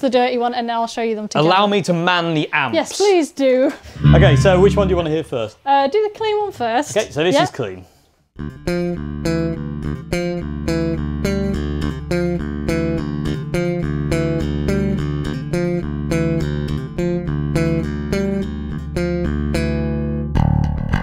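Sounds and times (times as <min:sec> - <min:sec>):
electric bass guitar riff: 0:04.0 - 0:05.2, 0:08.4 - 0:21.0.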